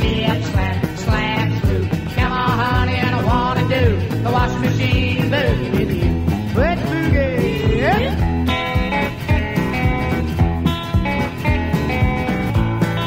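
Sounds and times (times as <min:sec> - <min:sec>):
blues-rock band music: 0:00.0 - 0:13.0
electric guitar lines: 0:00.0 - 0:13.0.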